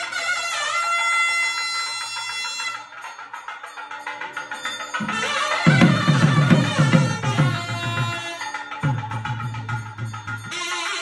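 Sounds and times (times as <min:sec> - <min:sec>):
nadaswaram long steady note: 0:00.0 - 0:11.0.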